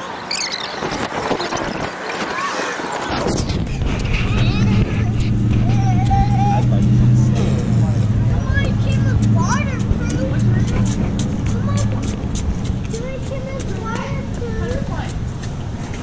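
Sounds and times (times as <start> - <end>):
children's voices calling: 0.0 - 16.0.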